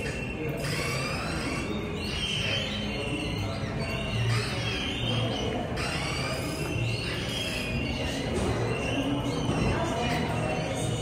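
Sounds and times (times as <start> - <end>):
synthesized whistling chirps: 0.0 - 11.0.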